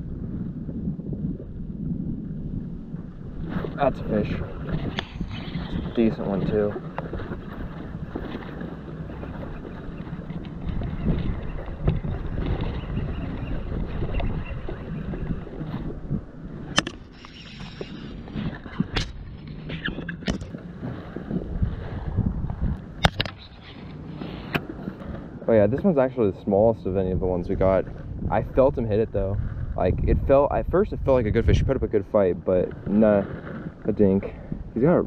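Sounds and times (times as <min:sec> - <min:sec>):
wind buffeting microphone: 0:00.0 - 0:35.0
kayak and tackle handling noise: 0:02.9 - 0:28.7, 0:32.4 - 0:35.0
sharp knocks and clicks: 0:16.7 - 0:17.3.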